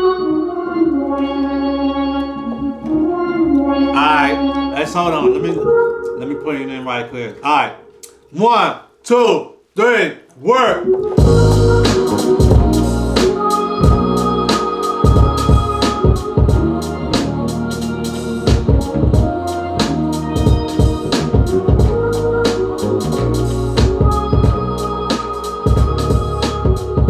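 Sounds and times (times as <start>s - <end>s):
synth organ chords: 0.0s - 8.3s, 10.8s - 27.0s
hip-hop beat with drums and bass: 10.6s - 27.0s.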